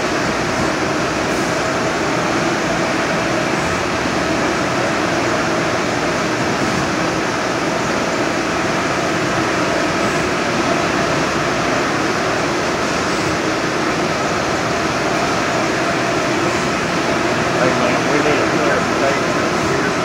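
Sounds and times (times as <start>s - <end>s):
printer humming and whirring: 0.0s - 20.0s.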